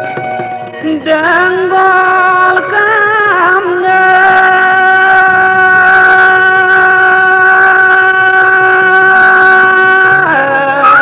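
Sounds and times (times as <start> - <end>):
low rhythmic accompaniment: 0.0 - 11.0.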